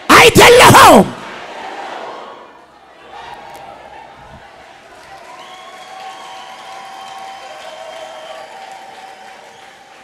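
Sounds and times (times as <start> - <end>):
congregation applauding: 3.2 - 10.0.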